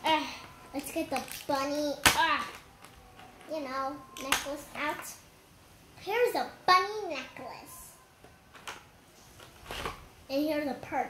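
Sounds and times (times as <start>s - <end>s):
plastic packaging rustle: 0.8s - 3.5s
plastic toy pieces handled: 0.8s - 3.5s.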